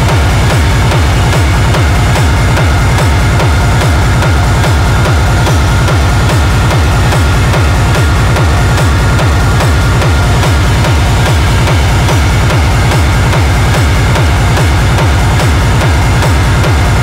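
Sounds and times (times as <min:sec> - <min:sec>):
dense noisy synth layer: 0:00.0 - 0:17.0
techno kick drum: 0:00.0 - 0:17.0.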